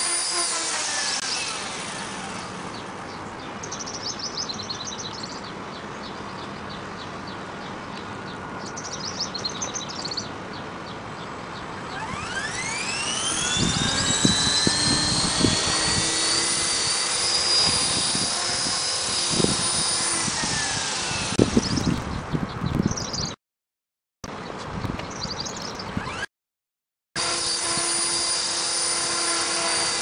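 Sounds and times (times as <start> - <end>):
helicopter motor whine: 0.0 - 3.1, 11.8 - 21.9, 25.7 - 26.3, 27.2 - 30.0
wind buffeting microphone: 13.2 - 23.4, 24.6 - 26.2.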